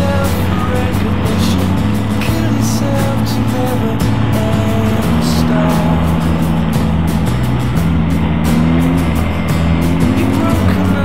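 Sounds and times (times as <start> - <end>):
motorcycle engines running: 0.0 - 11.0
music with bass line: 0.0 - 11.0.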